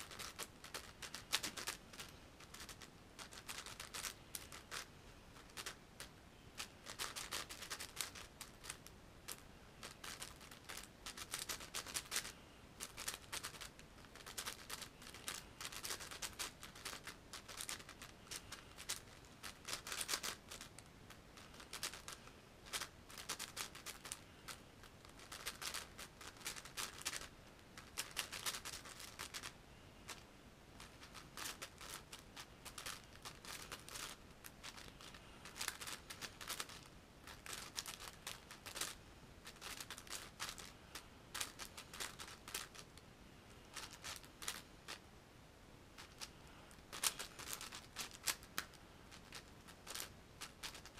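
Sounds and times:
puzzle cube clicking: 0:00.0 - 0:20.7, 0:21.4 - 0:30.2, 0:30.8 - 0:40.7.

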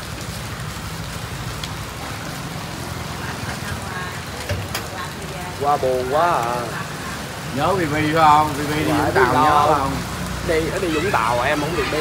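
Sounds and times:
low rumble of traffic: 0:00.0 - 0:12.0
steady rain on wet street: 0:00.0 - 0:12.0.

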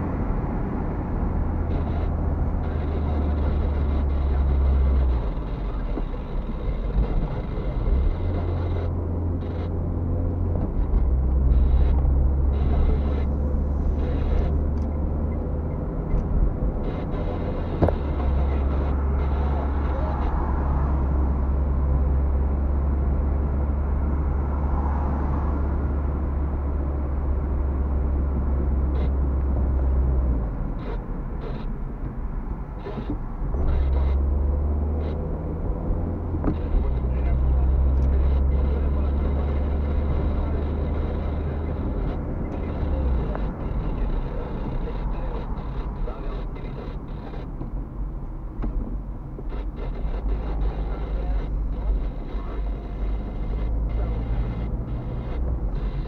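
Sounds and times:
car engine rumble: 0:00.0 - 0:56.0
tyres on wet road: 0:00.0 - 0:56.0.

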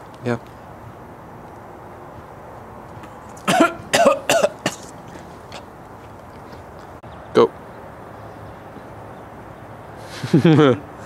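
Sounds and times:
man coughing hard: 0:03.5 - 0:04.9.

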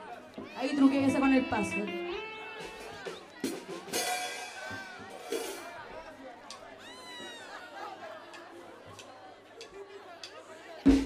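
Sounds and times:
live cumbia band: 0:00.4 - 0:05.8
drum strokes: 0:02.6 - 0:05.8.

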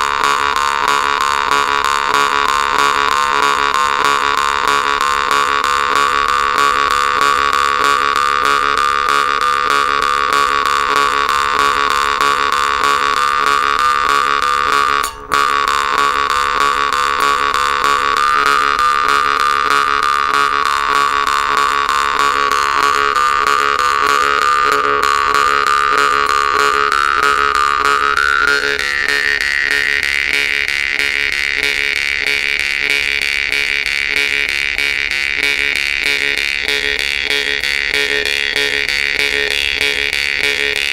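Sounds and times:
jaw harp drone: 0:00.0 - 0:40.9.

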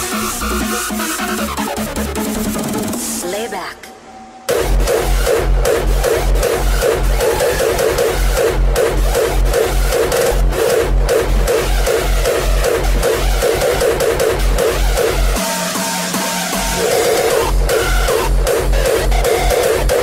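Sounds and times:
electronic dance music: 0:00.0 - 0:20.0.

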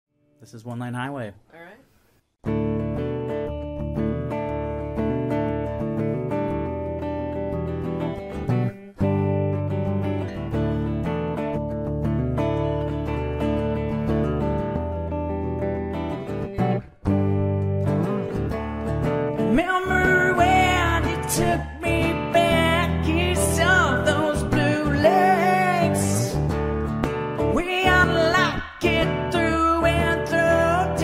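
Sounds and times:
solo guitar picking chords: 0:02.4 - 0:31.0.

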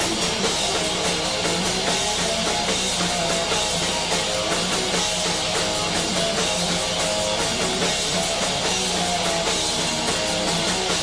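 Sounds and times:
distorted electric guitars: 0:00.0 - 0:11.0
drum kit beat: 0:00.0 - 0:11.0.

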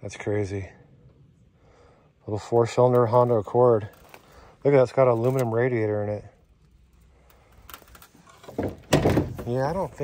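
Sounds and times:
faint handling rustles: 0:02.4 - 0:10.0.

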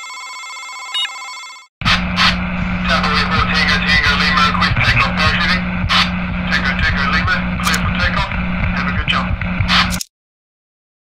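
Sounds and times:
garbled voice-like sounds: 0:01.8 - 0:10.0
low hum: 0:01.8 - 0:10.0
radio static with clicks: 0:01.8 - 0:10.0.

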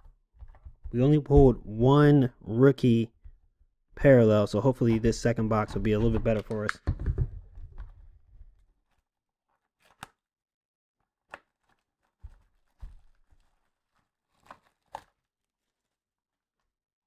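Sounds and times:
plastic wrap crackling and tearing: 0:07.8 - 0:10.3, 0:11.0 - 0:16.7.

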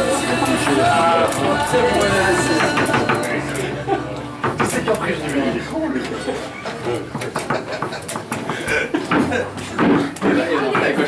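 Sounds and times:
foosball ball clacking: 0:00.0 - 0:03.6, 0:04.4 - 0:05.3, 0:07.0 - 0:11.0
rods clanking: 0:00.0 - 0:05.8
voices talking: 0:00.0 - 0:08.0.

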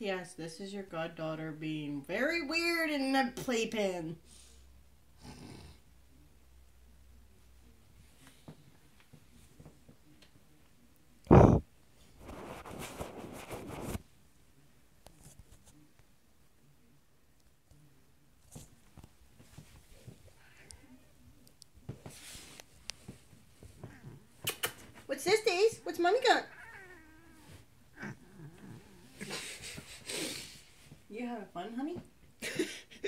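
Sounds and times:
cat yowling: 0:26.5 - 0:29.0.

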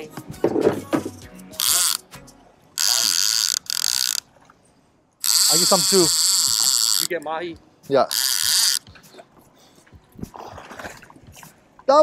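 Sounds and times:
faint boat deck noise: 0:00.0 - 0:12.0
fishing reel drag buzzing: 0:01.5 - 0:02.1, 0:02.8 - 0:04.3, 0:05.2 - 0:07.3, 0:08.0 - 0:08.9.

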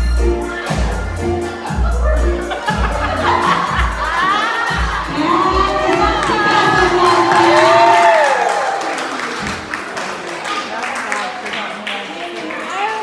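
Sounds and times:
dance music with drumbeat: 0:00.0 - 0:08.1
women cheering and chatting: 0:00.4 - 0:13.0.

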